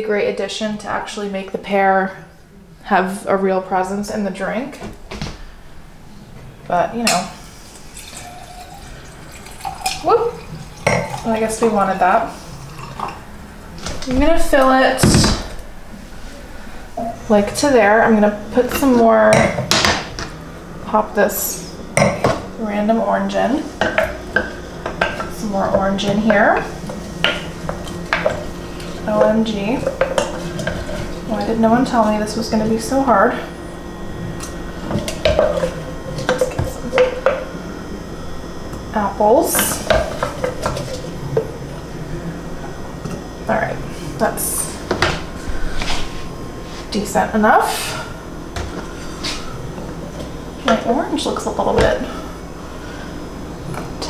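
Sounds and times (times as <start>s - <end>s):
liquid pouring into a glass: 7.8s - 11.3s, 12.6s - 13.2s.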